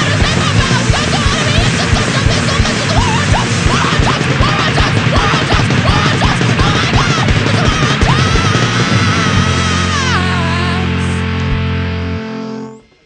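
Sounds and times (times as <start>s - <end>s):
punk band playing live: 0.0s - 12.7s
drums: 0.0s - 13.0s
high note sliding down: 8.8s - 13.0s.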